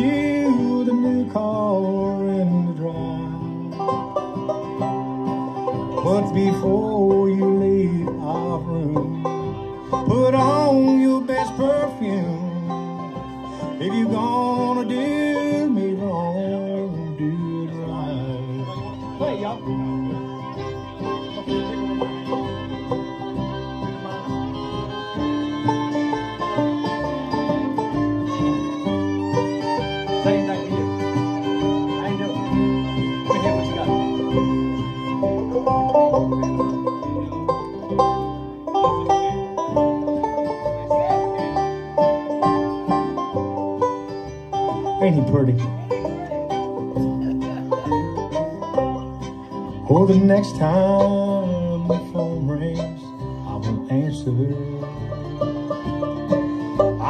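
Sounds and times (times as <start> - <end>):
acoustic guitar: 0.0 - 57.0
electric bass: 0.0 - 57.0
sliding string lead: 0.0 - 57.0.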